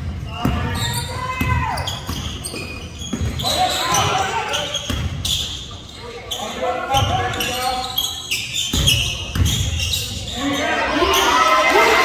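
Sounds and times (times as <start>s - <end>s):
voices shouting: 10.3s - 12.0s.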